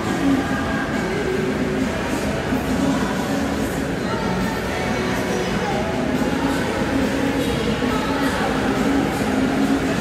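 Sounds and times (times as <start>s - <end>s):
swimming pool hall rumble: 0.0s - 10.0s.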